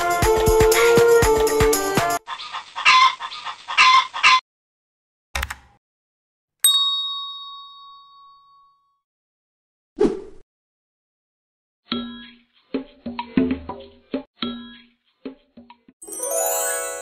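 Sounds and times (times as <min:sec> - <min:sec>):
background music with steady beat: 0:00.0 - 0:02.2
bell-like ding: 0:06.6 - 0:09.0.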